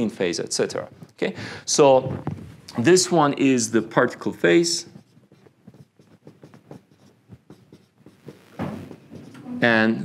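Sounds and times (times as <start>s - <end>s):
marker pen writing on whiteboard: 2.8s - 9.5s.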